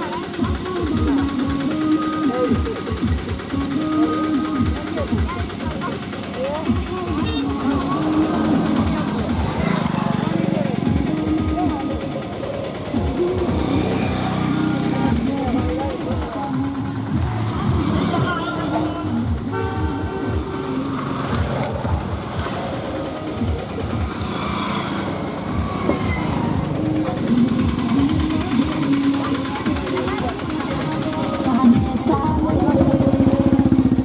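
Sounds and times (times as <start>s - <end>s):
motorcycles passing: 0.0s - 34.0s
people's voices: 0.0s - 34.0s
vehicle engines: 0.0s - 34.0s
car horn toot: 7.2s - 7.6s, 19.4s - 20.8s.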